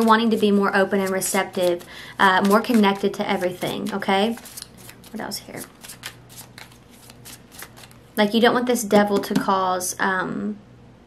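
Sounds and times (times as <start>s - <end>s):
cards being shuffled by hand: 0.0s - 8.2s.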